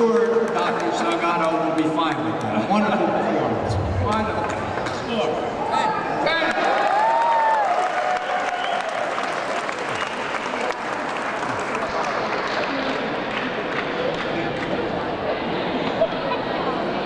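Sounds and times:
crowd voices: 0.0s - 6.7s, 9.2s - 17.0s
audience applauding: 6.4s - 14.7s.

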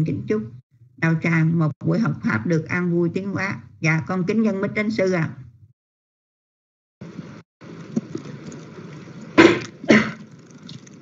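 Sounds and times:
microphone hiss: 7.0s - 9.8s
person coughing: 9.4s - 10.3s.

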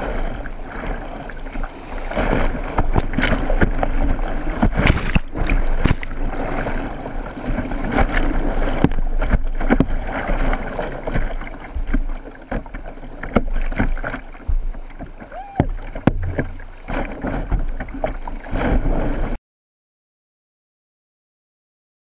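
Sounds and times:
paddle splashing and knocking: 0.0s - 19.4s.

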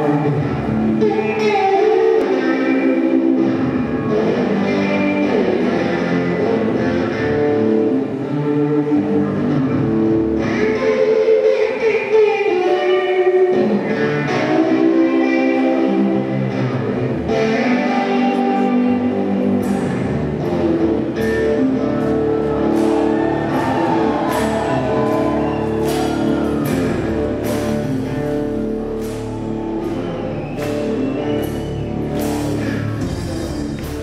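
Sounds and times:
electric guitar sliding notes: 0.0s - 34.0s
live band music: 0.0s - 34.0s.

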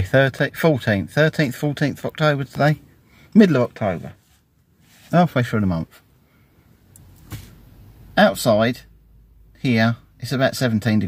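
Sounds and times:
faint low hum in car cabin: 0.0s - 11.0s.

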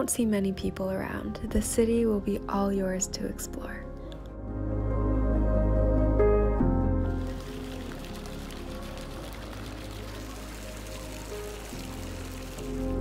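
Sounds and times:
soft ambient music: 0.0s - 13.0s
steady rain hissing: 7.1s - 13.0s.

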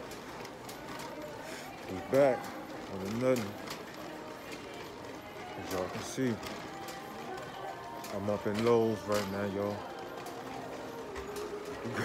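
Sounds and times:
faint background music: 0.0s - 12.0s
store hum: 0.0s - 12.0s.

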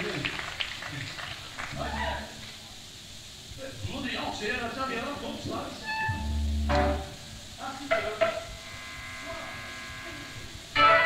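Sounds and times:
high voices calling out: 1.7s - 2.4s
held instrument note: 5.8s - 7.3s.

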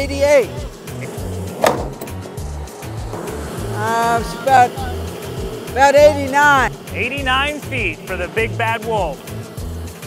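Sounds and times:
background music with bass beat: 0.0s - 10.0s
sharp knock: 1.6s - 2.3s.

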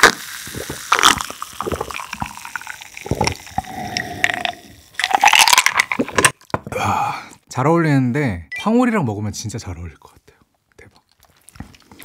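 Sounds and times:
ice and liquid in glass: 0.0s - 6.4s
person gulping and swallowing: 0.0s - 7.4s, 11.0s - 12.0s.

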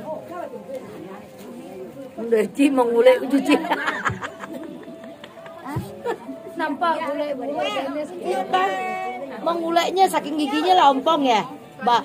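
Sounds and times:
women chattering: 0.0s - 12.0s.

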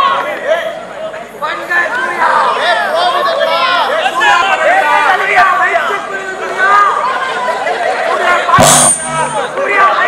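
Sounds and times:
crowd chattering and calling out: 0.0s - 10.0s.

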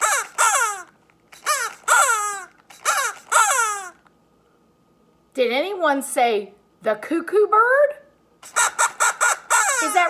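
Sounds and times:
puppet voice imitating cuckoo call: 0.0s - 4.0s, 8.4s - 10.0s.

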